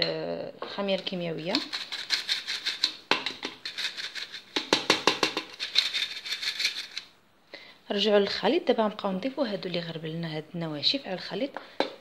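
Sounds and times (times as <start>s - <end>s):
flour sifter rattling: 1.0s - 7.0s.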